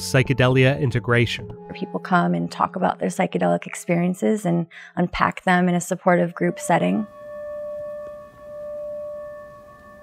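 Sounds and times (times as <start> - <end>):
metal singing bowl ringing: 6.4 - 10.0.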